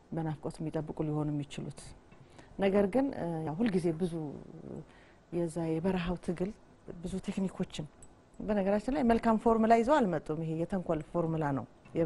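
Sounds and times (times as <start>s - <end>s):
woman talking: 0.0s - 2.0s, 2.6s - 12.0s.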